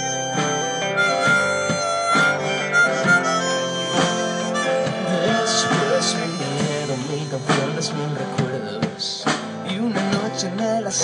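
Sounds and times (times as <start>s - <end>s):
harmonica solo: 0.0s - 8.2s
drums: 0.0s - 11.0s
strummed guitars: 0.0s - 11.0s.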